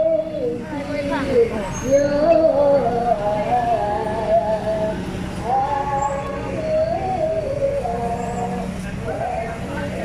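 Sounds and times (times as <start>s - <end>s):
minibus engine running: 0.0s - 10.0s
person singing through loudspeaker: 0.0s - 10.0s.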